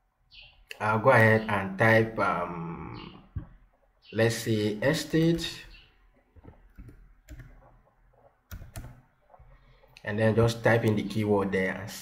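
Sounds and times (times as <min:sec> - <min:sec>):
computer keyboard keystrokes: 0:06.4 - 0:07.8, 0:08.5 - 0:09.0.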